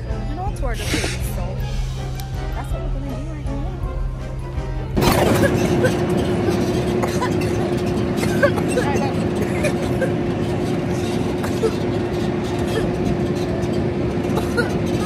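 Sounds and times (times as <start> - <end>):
passengers chattering: 0.0 - 15.0
tractor engine humming: 0.0 - 15.0.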